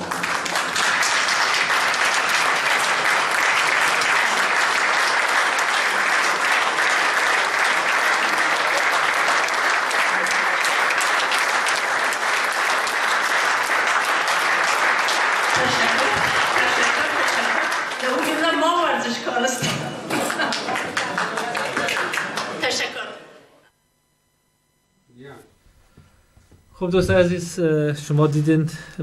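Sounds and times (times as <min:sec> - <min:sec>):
audience applauding: 0:00.0 - 0:19.4, 0:20.0 - 0:23.1.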